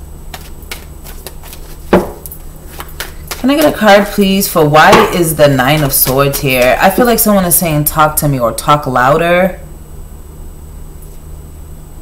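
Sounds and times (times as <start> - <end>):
steady low hum: 0.0 - 12.0
cards clicking and tapping: 0.3 - 3.8
loud knock: 1.9 - 2.2, 4.9 - 5.2.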